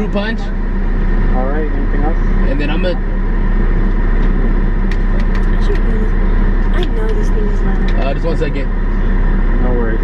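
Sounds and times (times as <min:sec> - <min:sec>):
car engine idling: 0:00.0 - 0:10.0.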